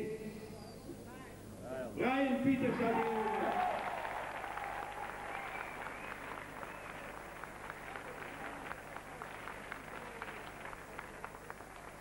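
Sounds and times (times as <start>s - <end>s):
crowd applauding: 2.8s - 12.0s.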